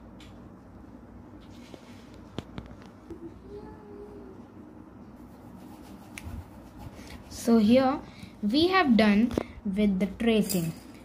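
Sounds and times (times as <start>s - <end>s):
pencil scratching on paper: 5.2s - 7.8s.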